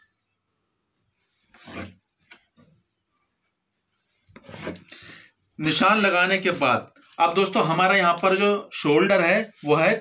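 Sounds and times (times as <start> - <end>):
chalk scraping across cloth: 1.0 - 2.3, 3.8 - 4.9.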